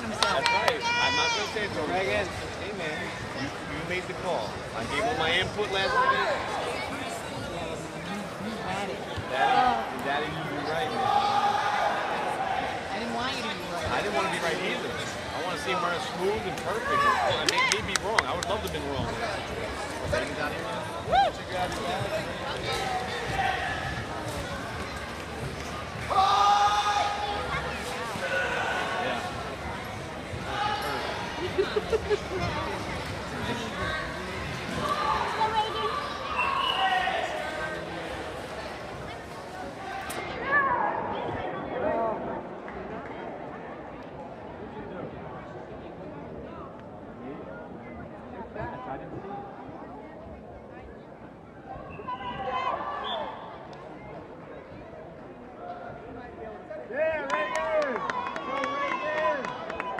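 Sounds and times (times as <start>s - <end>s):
spectators chattering: 0.0s - 59.9s.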